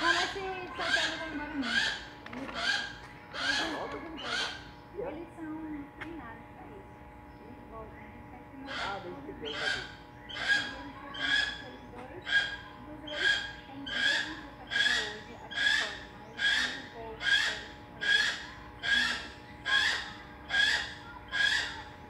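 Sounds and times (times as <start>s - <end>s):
bird of prey calling: 0.0s - 4.9s, 8.6s - 22.0s.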